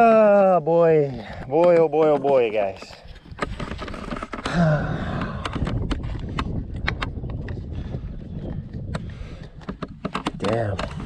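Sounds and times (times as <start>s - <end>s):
camera rustling and knocking: 1.3s - 11.0s.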